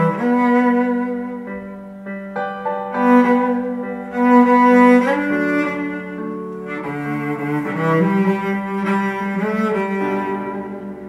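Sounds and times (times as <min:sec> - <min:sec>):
bowed cello melody: 0:00.0 - 0:11.0.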